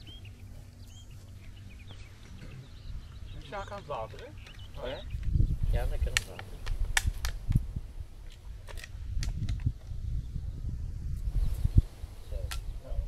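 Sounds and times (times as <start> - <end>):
wind rumbling on microphone: 0.0 - 13.0.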